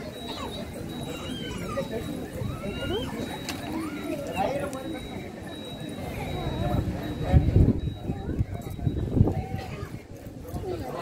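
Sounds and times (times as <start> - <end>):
faint high-pitched tone: 0.0 - 9.6
people talking over one another: 0.0 - 11.0.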